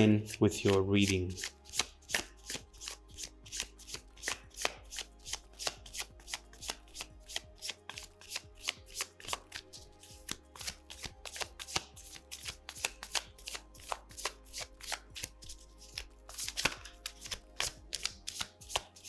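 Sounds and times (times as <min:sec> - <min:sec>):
cards being shuffled: 0:00.2 - 0:19.0.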